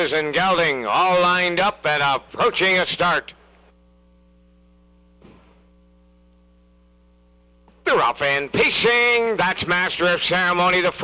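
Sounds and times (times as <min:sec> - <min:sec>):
faint electrical mains hum: 0:00.0 - 0:11.0.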